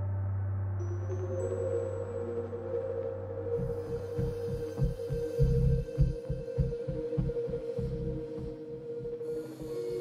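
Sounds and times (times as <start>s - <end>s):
throbbing heartbeat-like pulse: 3.6s - 8.7s.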